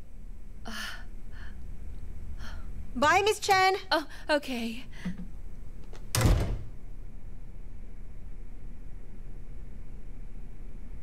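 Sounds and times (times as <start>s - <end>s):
door shutting with a thud: 6.1s - 6.8s.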